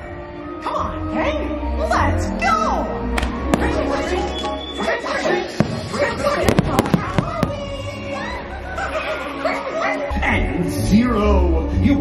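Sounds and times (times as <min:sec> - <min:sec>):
fireworks bangs: 0:05.5 - 0:08.0.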